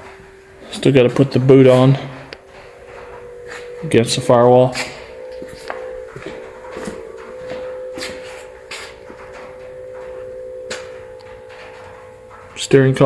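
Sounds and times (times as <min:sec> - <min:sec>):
steady mid-pitched hum: 0:00.0 - 0:13.0.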